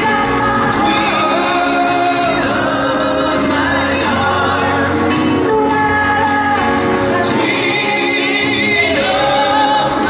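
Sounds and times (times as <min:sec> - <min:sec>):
backing band playing: 0:00.0 - 0:10.0
male vocal group singing in harmony: 0:00.0 - 0:10.0.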